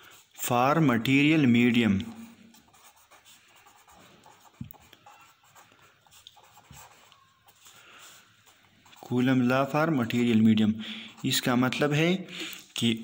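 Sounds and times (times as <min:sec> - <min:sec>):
marker scratching on paper: 0:00.0 - 0:12.0.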